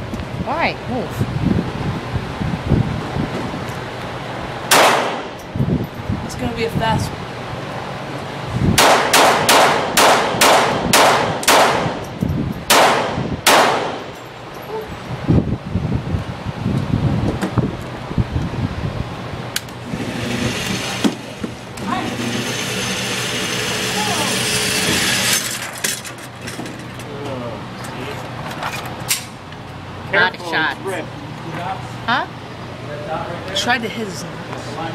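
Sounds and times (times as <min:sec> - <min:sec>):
pistol shots ringing indoors: 0:04.7 - 0:05.3, 0:08.8 - 0:12.0, 0:12.7 - 0:14.1.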